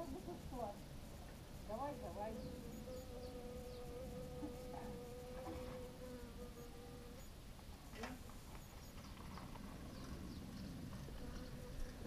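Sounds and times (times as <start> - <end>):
flying insect buzzing: 0.0 - 12.0.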